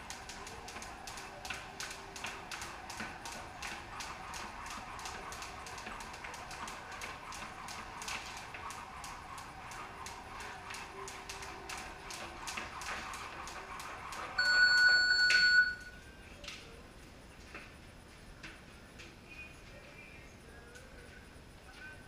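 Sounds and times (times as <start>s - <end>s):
jump ropes slapping concrete: 0.0s - 14.4s
electronic timer beep: 14.4s - 15.9s.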